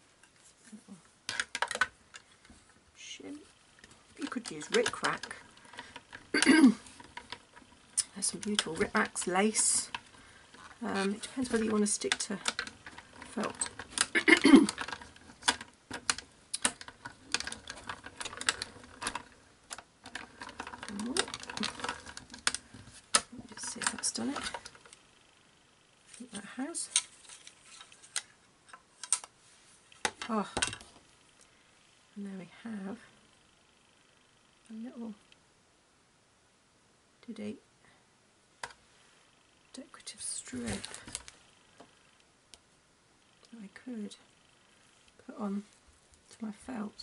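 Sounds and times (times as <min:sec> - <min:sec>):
hand-cranked die-cutting machine clicks: 0:06.9 - 0:25.0.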